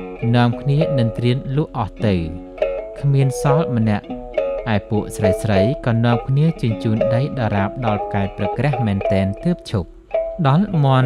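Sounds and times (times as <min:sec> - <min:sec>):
quiet background music: 0:00.0 - 0:11.0
person narrating a story: 0:00.2 - 0:02.4, 0:03.0 - 0:04.1, 0:04.7 - 0:11.0.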